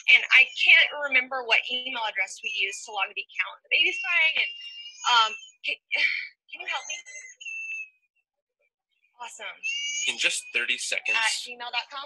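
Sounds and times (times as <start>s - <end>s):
woman's voice: 0.0s - 7.3s, 9.2s - 9.6s, 11.1s - 12.0s
faint high whistle-like tone: 10.0s - 11.4s.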